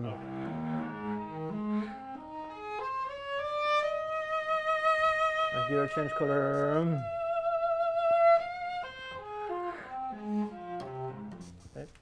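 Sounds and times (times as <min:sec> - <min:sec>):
bowed cello: 0:00.0 - 0:11.9.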